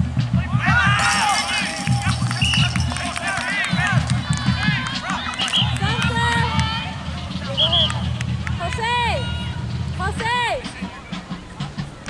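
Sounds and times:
people shouting and calling out: 0.3s - 12.0s.

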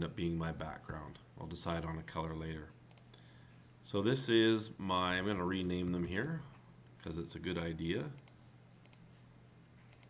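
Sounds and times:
low steady hum: 0.0s - 10.0s
computer keyboard and mouse clicks: 8.2s - 9.0s.

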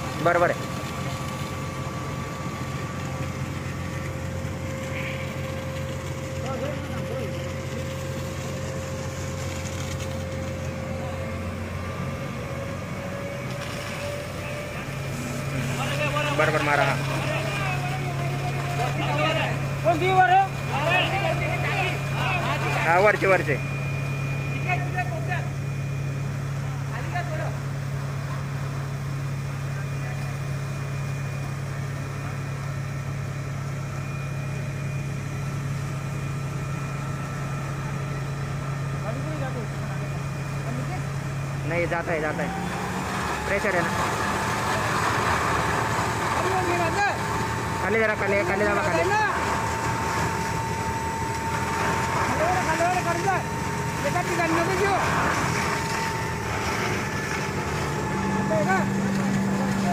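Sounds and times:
fire engine droning: 0.0s - 59.9s
voices talking: 10.2s - 28.6s, 36.7s - 59.9s
hose spraying water: 13.4s - 23.6s, 42.5s - 59.9s.

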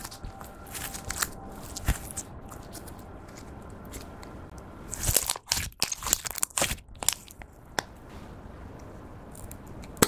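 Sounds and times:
slime squishing with crackles: 0.0s - 8.0s.

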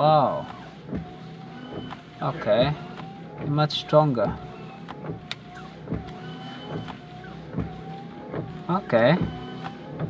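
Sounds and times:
wiper blades knocking: 0.0s - 10.0s
wiper motor humming: 0.0s - 10.0s
wipers sweeping wet windscreen: 0.0s - 10.0s.

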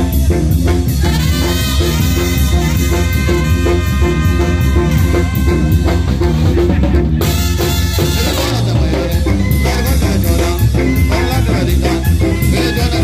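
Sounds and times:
brass band music: 0.0s - 13.0s
drums steady beat: 0.0s - 13.0s.

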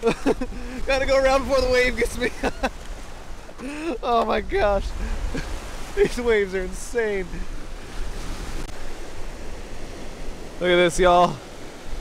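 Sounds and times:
lake waves breaking on rocky shore: 0.0s - 12.0s
wind rumble on microphone: 4.2s - 10.6s.

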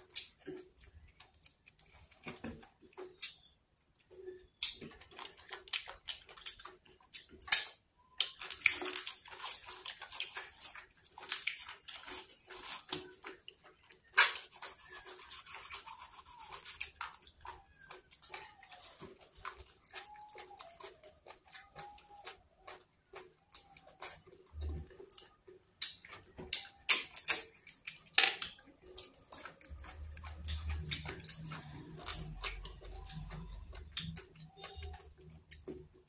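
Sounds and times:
wet mouth clicks and chewing: 0.0s - 36.0s
plastic film crinkling: 8.5s - 13.4s.

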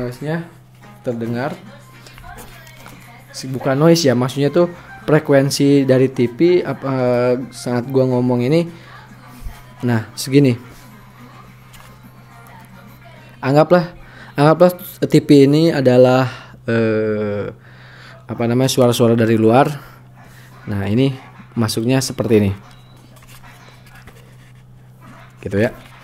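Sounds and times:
faint music from television: 0.0s - 26.0s
steady low hum: 0.0s - 26.0s.

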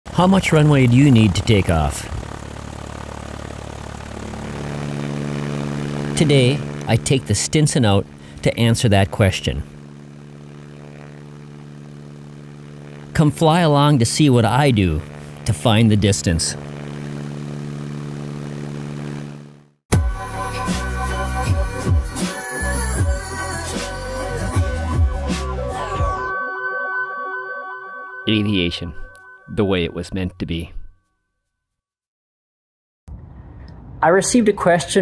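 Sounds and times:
piston aircraft engine and propeller: 0.1s - 25.9s.

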